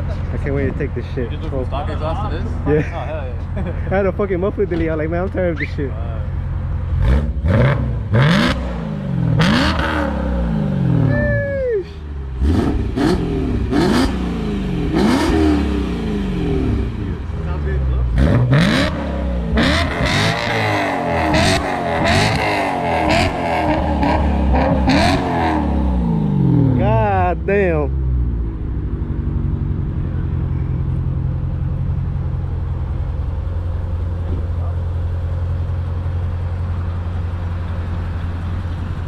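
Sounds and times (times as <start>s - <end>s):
car engine revving: 0.0s - 11.5s, 12.1s - 39.0s.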